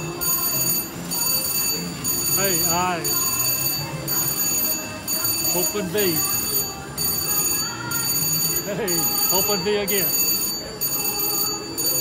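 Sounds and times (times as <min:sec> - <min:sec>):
slot machine ringing and chiming: 0:00.0 - 0:12.0.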